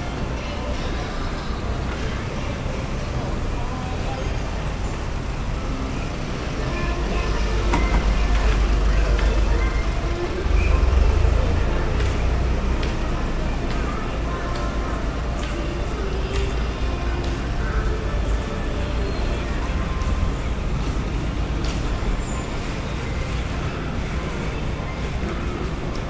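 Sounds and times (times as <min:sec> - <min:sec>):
background music: 0:00.0 - 0:26.0
background voices: 0:00.0 - 0:26.0
road traffic rumble: 0:00.0 - 0:26.0
vehicles passing close by: 0:00.0 - 0:26.0.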